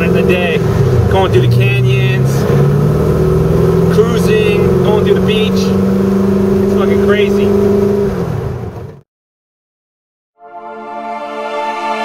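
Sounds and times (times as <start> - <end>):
car engine droning: 0.0 - 9.0.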